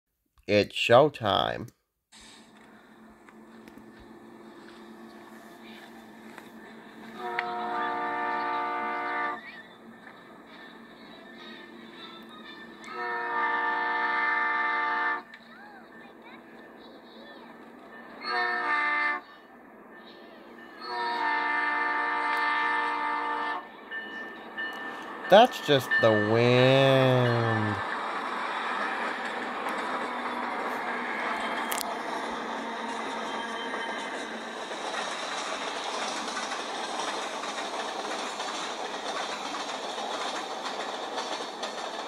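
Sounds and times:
locomotive air horn blasts: 0:07.2 - 0:09.4, 0:12.9 - 0:15.2, 0:18.3 - 0:19.2, 0:20.9 - 0:23.6.

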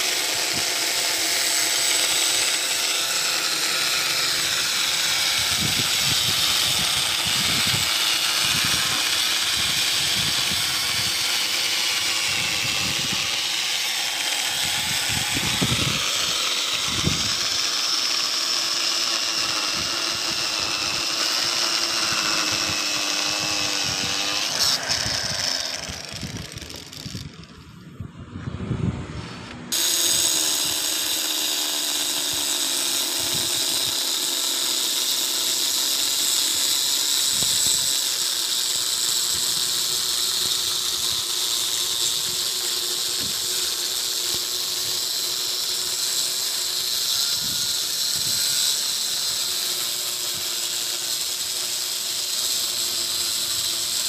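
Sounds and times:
stone cutter whining: 0:00.0 - 0:28.2, 0:28.9 - 0:54.0.

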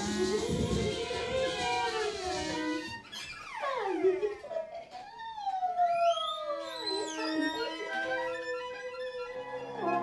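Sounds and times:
person singing sliding pitches: 0:00.0 - 0:03.0
sliding string instruments: 0:06.6 - 0:10.0.

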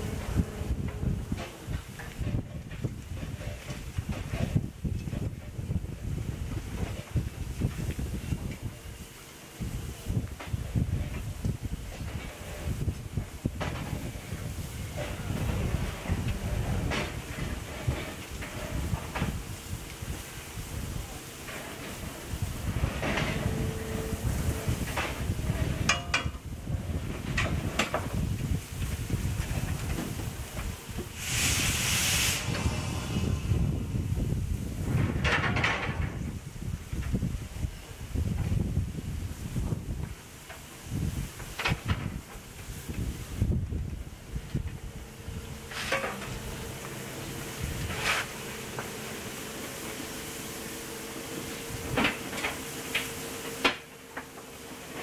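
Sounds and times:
wind buffeting microphone: 0:00.0 - 0:53.7
steam locomotive venting steam: 0:00.0 - 0:55.0.

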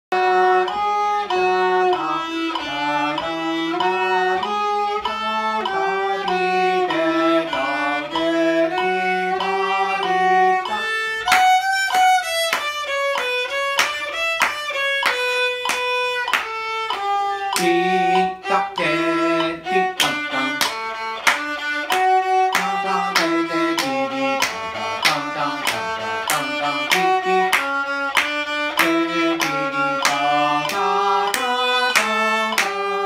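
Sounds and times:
bowed violin melody: 0:00.1 - 0:33.0.

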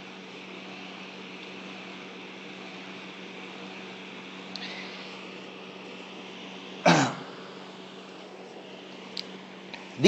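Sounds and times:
man clearing his throat: 0:06.9 - 0:07.3.

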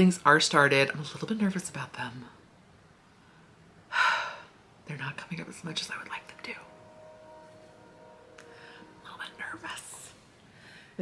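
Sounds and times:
woman talking: 0:00.0 - 0:02.4, 0:04.8 - 0:06.7.

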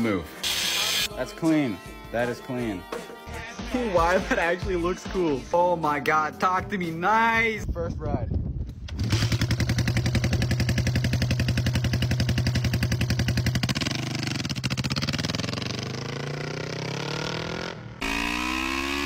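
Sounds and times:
motorcycle engine idling and revving: 0:08.7 - 0:19.0.

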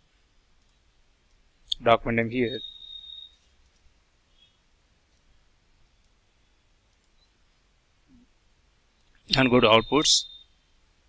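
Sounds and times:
man's voice: 0:01.7 - 0:02.6, 0:09.3 - 0:10.2.

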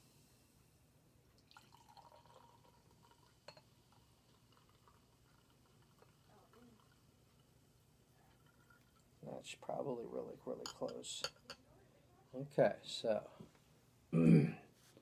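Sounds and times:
soda pouring into a glass: 0:01.4 - 0:09.2.

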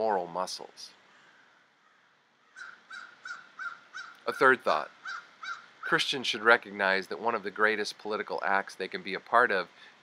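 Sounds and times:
crow cawing: 0:01.0 - 0:04.3, 0:05.0 - 0:05.9.

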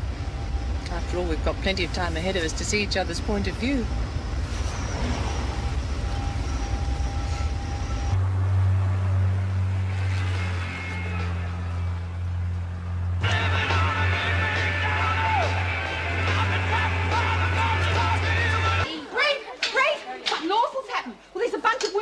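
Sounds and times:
heavy truck engine drone: 0:00.0 - 0:18.8
music with high steady tones: 0:13.2 - 0:18.8.

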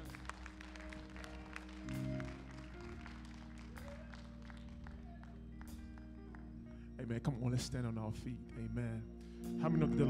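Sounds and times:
hand claps: 0:00.0 - 0:06.5
soft church keyboard chords: 0:00.0 - 0:10.0.

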